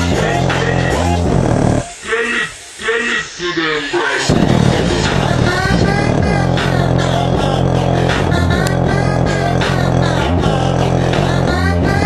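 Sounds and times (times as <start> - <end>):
bass-heavy music with singing: 0.0 - 12.0.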